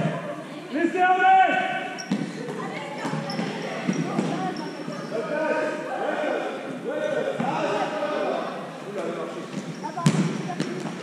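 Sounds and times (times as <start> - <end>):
shoes squeaking on court: 1.9 - 5.2, 9.4 - 11.0
basketball bouncing: 2.0 - 5.0, 10.0 - 11.0.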